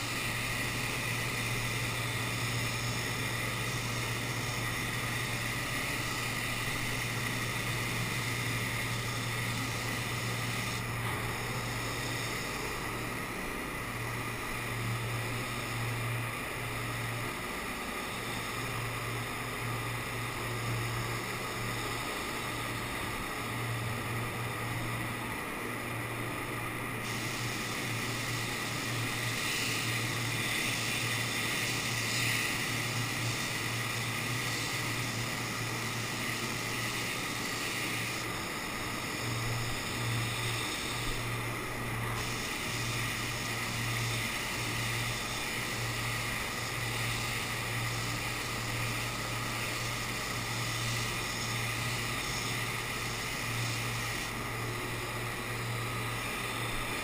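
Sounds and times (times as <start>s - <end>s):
paint spray gun hissing: 0.0s - 57.0s
steady low hum: 0.0s - 57.0s.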